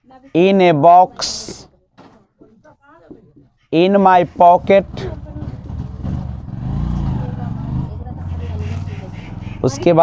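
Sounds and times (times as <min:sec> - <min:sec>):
vehicle engine rumble: 0:04.4 - 0:10.0.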